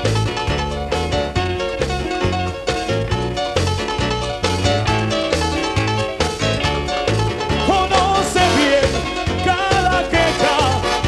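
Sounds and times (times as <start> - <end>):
live dance band music: 0.0 - 11.0.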